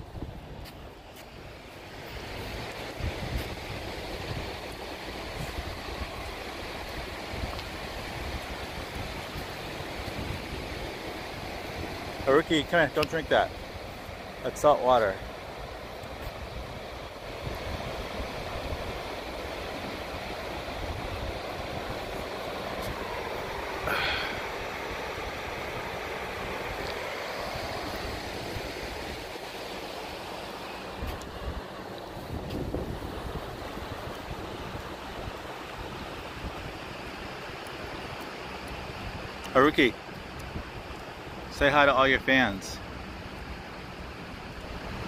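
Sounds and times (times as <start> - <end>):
wind buffeting microphone: 0.0 - 1.1, 2.2 - 14.2, 15.5 - 29.6, 31.0 - 38.2
distant surf: 0.0 - 45.0.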